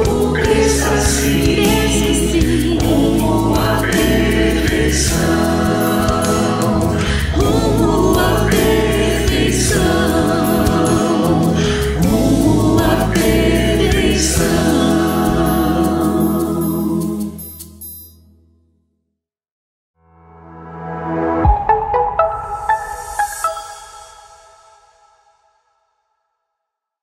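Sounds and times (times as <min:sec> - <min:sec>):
bass guitar: 0:00.0 - 0:17.2
mixed choir singing in unison: 0:00.0 - 0:17.4
drums: 0:00.0 - 0:17.8
keyboard: 0:00.0 - 0:17.8, 0:20.2 - 0:25.1.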